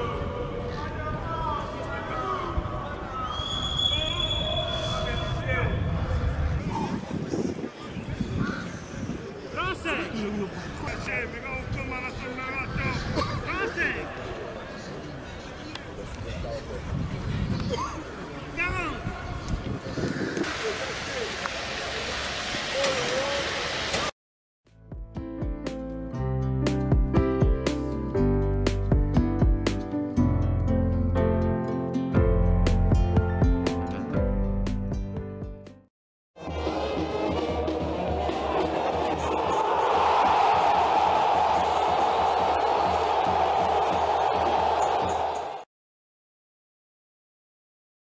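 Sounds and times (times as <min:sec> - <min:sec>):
high-pitched whistle blast: 0:03.2 - 0:05.5
guitar music: 0:25.6 - 0:35.7.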